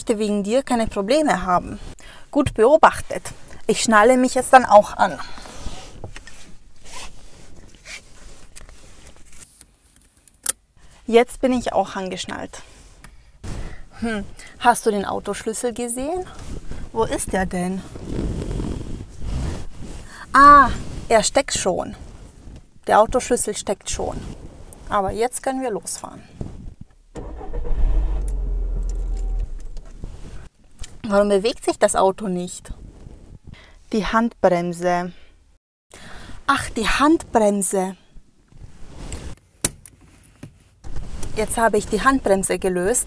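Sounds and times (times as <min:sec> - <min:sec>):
low rumbling and rustling: 0:26.3 - 0:30.5.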